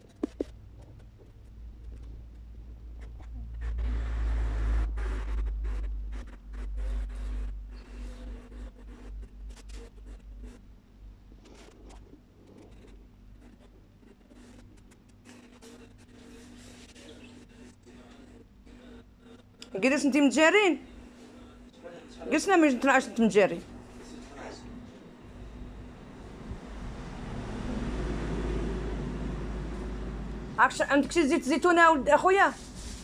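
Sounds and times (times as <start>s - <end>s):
low steady hum: 0.0s - 33.0s
faint scratchy rustling: 11.4s - 19.4s, 30.8s - 33.0s
vehicle engine rumbling: 25.3s - 31.4s.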